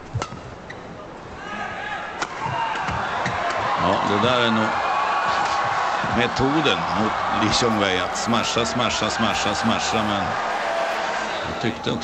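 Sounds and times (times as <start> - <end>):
crowd voices: 3.0 - 12.0.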